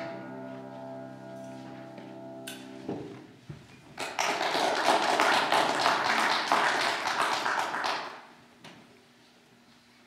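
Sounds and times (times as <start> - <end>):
music: 0.0 - 3.2
congregation applauding: 4.0 - 8.4.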